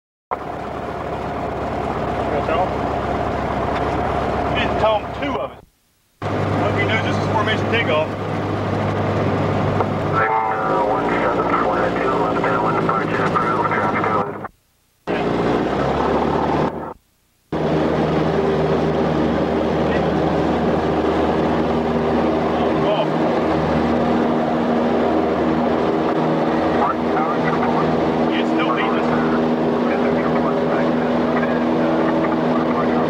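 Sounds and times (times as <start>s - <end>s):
light aircraft engine drone: 0.3s - 5.6s, 6.2s - 14.5s, 15.1s - 33.0s
voices: 2.2s - 2.8s, 3.5s - 5.7s, 6.6s - 8.2s, 10.1s - 14.5s, 22.4s - 23.2s, 26.5s - 33.0s.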